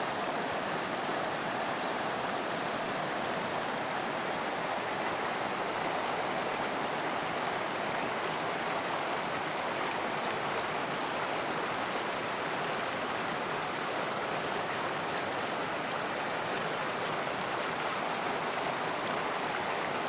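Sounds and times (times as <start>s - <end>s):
river rushing over stones: 0.0s - 20.0s.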